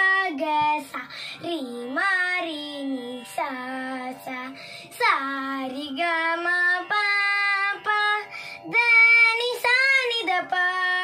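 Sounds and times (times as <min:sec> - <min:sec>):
girl singing: 0:00.0 - 0:11.0.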